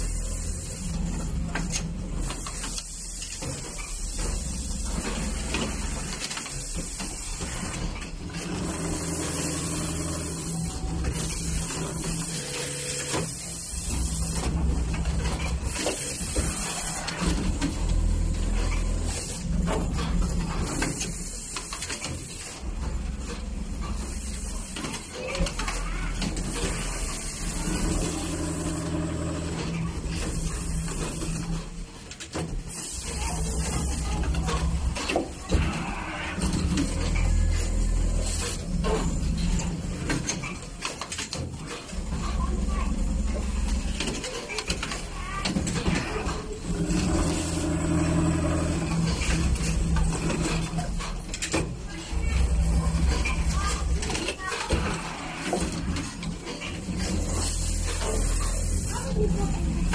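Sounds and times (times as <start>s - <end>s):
sewing machine motor whirring: 0.0s - 59.9s.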